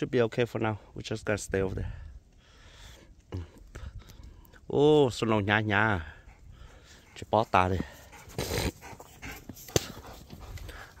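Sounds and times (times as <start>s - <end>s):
dog breathy sound: 6.0s - 11.0s.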